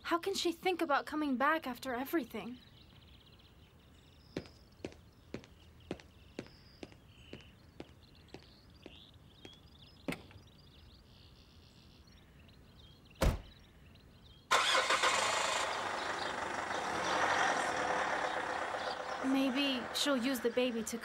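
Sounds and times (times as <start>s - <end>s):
faint footsteps: 4.3s - 10.4s
truck engine starting and running: 14.5s - 21.0s.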